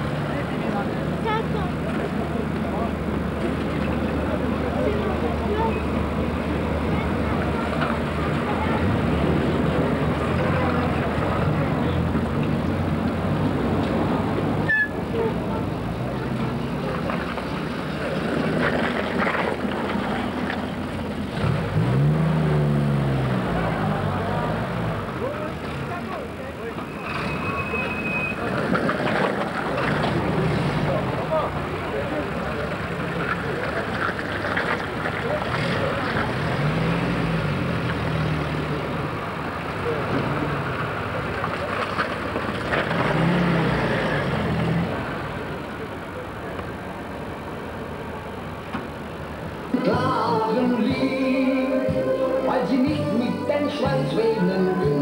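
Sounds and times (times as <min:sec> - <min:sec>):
vehicle engines passing: 0:00.0 - 0:55.0
indistinct voices: 0:49.6 - 0:55.0.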